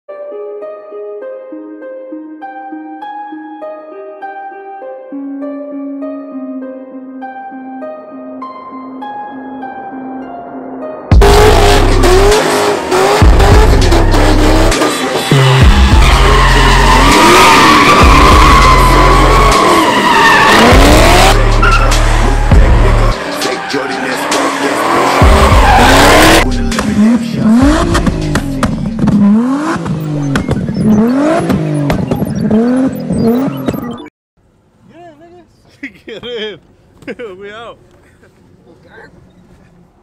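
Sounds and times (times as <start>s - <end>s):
music with heavy bass line: 11.1s - 19.8s, 20.5s - 23.6s, 24.9s - 33.4s
car engines revving: 11.1s - 34.1s
tires squealing: 11.2s - 34.1s, 37.9s - 40.0s.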